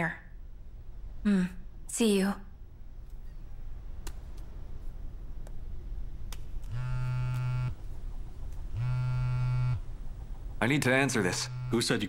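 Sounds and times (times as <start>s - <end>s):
mobile phone buzzing: 6.7s - 7.8s, 8.8s - 9.8s, 11.3s - 12.0s.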